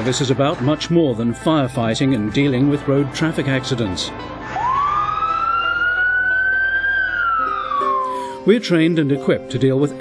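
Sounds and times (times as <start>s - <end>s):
fire engine siren wailing: 4.5s - 8.4s.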